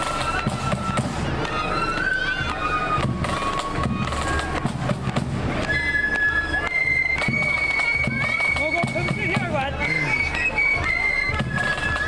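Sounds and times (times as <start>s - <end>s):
snare drum rolls: 0.0s - 9.7s
flutes playing a tune: 0.0s - 12.0s.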